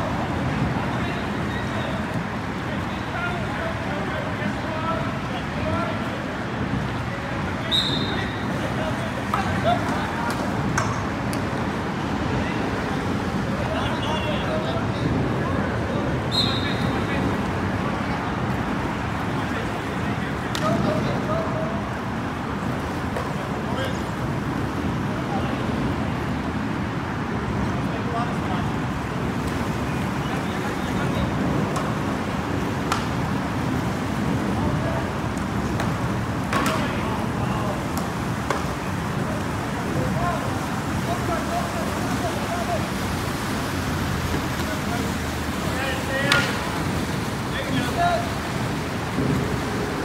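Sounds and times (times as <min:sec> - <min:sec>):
steady outdoor rumble: 0:00.0 - 0:50.0.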